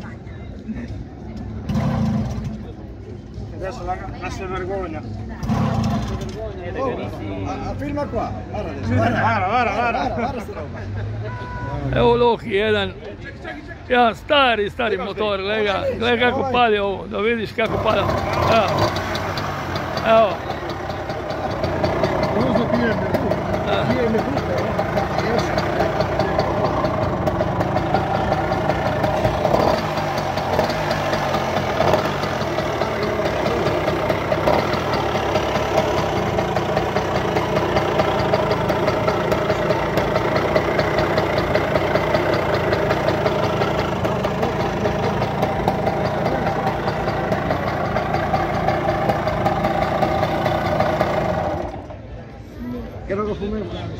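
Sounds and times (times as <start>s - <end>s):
moped engine running: 4.4s - 8.8s, 17.4s - 52.2s.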